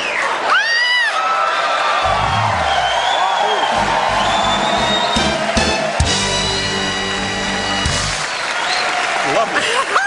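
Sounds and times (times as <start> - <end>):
audience applauding: 0.0 - 10.0
film music: 2.1 - 8.4.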